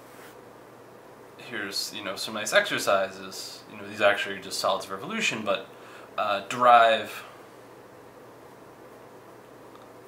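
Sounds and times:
room hiss: 0.0s - 10.0s.

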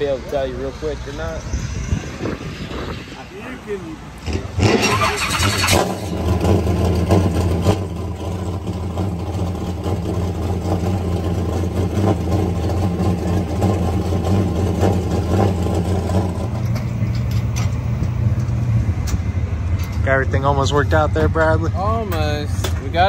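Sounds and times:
race car engine idling: 3.7s - 22.9s.

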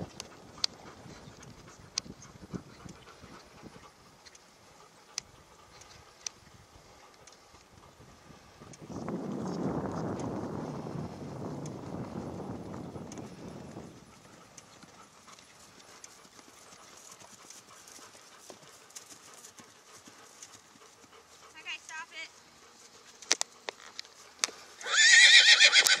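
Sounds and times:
wind buffeting microphone: 0.0s - 4.3s, 5.2s - 15.9s
horse whinnying: 24.8s - 26.0s.

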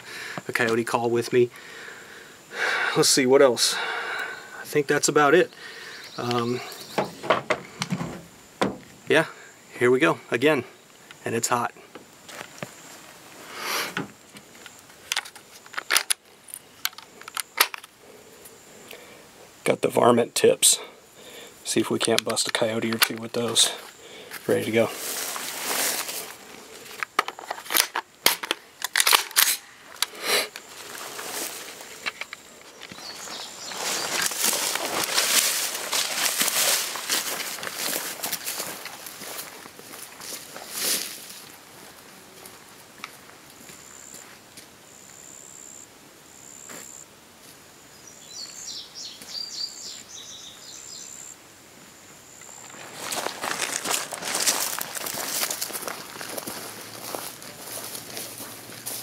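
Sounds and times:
footsteps through tall grass: 23.5s - 27.0s, 30.6s - 32.0s, 32.6s - 44.7s, 52.5s - 59.0s.

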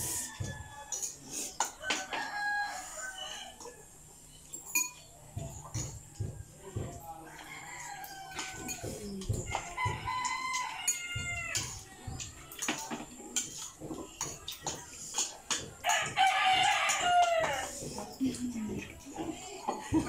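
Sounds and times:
rooster crowing: 0.0s - 3.9s, 7.2s - 11.7s, 15.8s - 17.9s
cutlery clicking on bowls: 0.4s - 2.4s, 4.5s - 6.8s, 7.4s - 20.0s.

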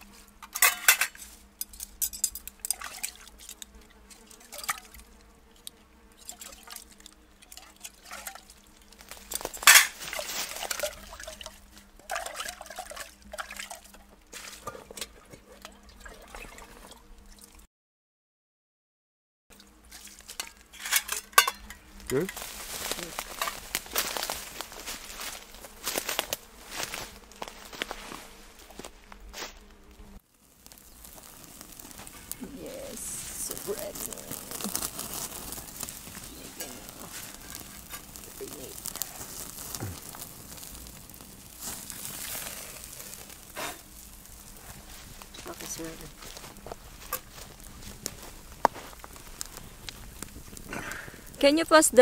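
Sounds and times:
campfire crackling: 0.0s - 17.6s, 19.6s - 52.0s
metal cups and pots clinking: 0.4s - 3.2s, 9.6s - 10.0s, 12.0s - 13.8s, 20.4s - 22.4s.

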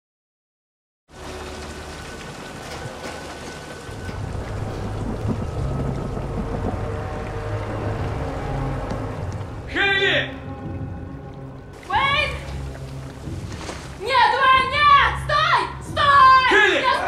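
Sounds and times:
low drone: 1.1s - 11.8s
heavy rain: 1.1s - 17.0s
low rumble: 1.2s - 14.0s.

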